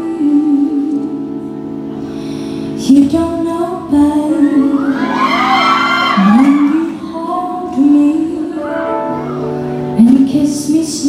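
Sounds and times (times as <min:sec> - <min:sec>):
woman singing: 0:00.0 - 0:01.6, 0:02.8 - 0:11.0
live band playing ballad: 0:00.0 - 0:11.0
audience whooping and cheering: 0:04.5 - 0:07.0.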